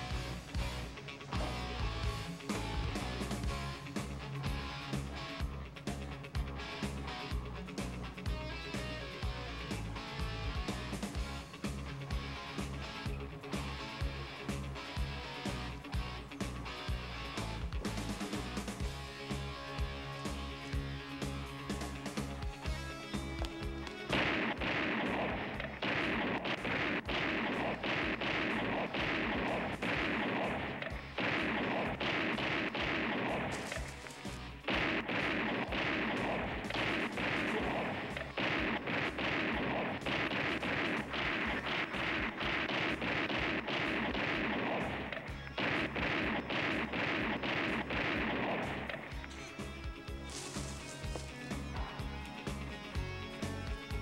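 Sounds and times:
action film music with beat: 0.0s - 54.0s
gunshots: 23.4s - 52.5s.

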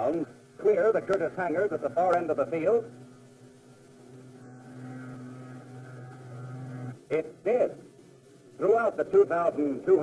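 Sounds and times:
propeller aircraft engine drone: 0.0s - 10.0s.

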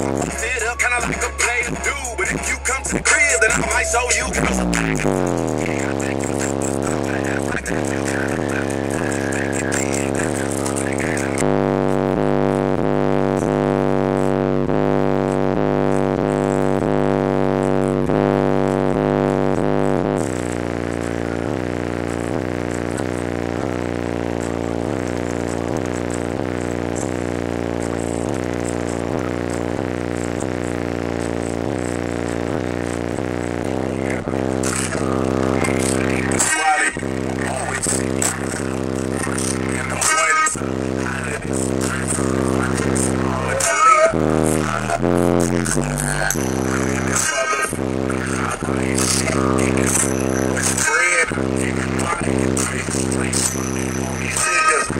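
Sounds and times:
bass-heavy music from subwoofers: 0.0s - 54.9s.

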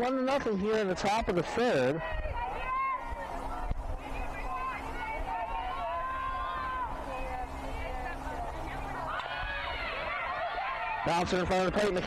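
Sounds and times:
distant players calling: 0.0s - 12.0s.

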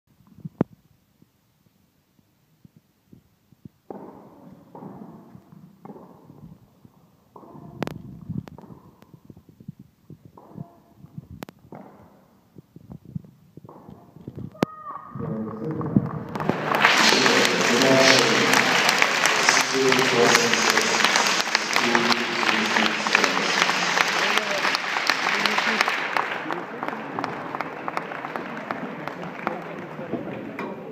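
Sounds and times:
racquet hitting tennis ball: 3.9s - 6.4s
low voices: 14.4s - 30.9s
spectators applauding and cheering: 15.1s - 30.9s.

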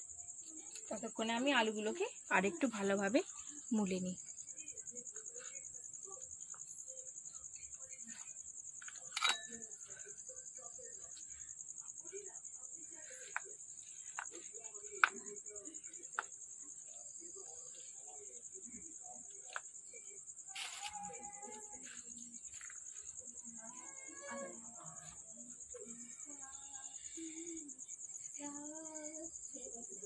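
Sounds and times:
high-pitched insect trill: 0.0s - 30.0s.

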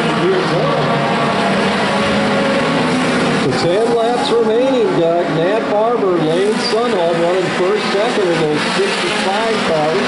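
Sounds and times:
race car engines at speed: 0.0s - 10.0s.

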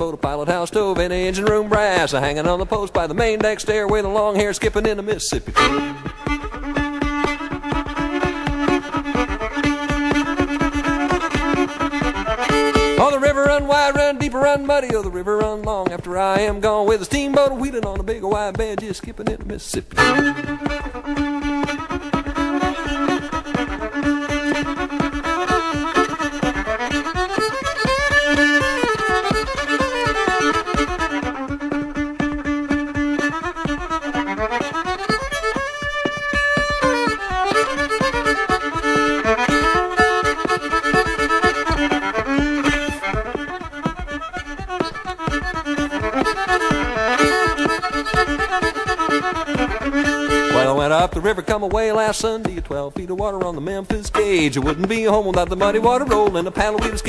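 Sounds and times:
fiddle melody: 0.0s - 57.0s
steady rhythmic beat: 0.0s - 57.0s.

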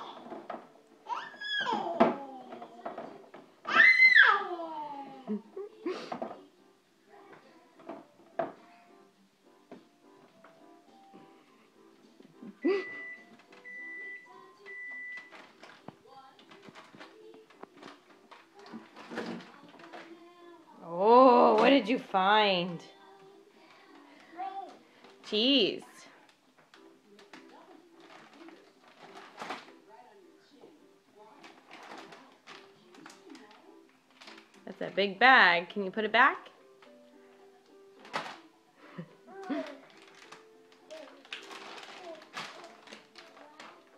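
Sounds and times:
refrigerator alarm beeping: 12.8s - 15.3s
plastic bag crinkling: 14.3s - 20.3s, 26.7s - 29.8s, 31.2s - 34.8s, 38.0s - 38.6s, 39.2s - 43.9s.

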